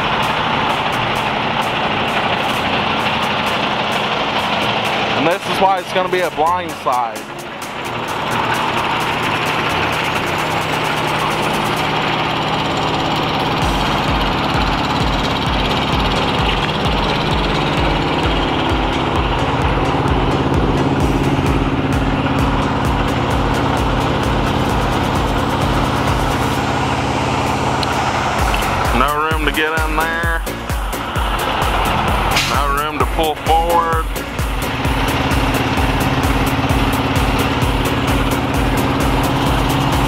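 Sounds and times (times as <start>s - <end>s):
diesel engine idling: 0.0s - 40.0s
regular low throb: 0.0s - 40.0s.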